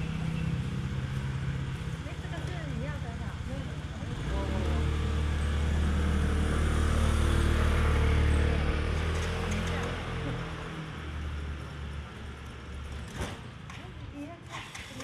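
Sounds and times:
vehicle engine running: 0.0 - 11.4.

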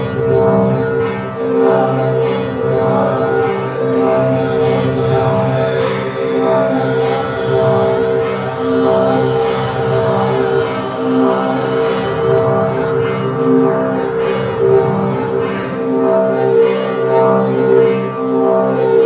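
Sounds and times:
low drone tones: 0.0 - 19.0.

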